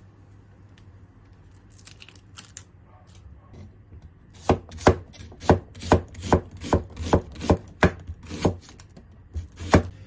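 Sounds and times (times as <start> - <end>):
knife chopping on cutting board: 4.4 - 9.9.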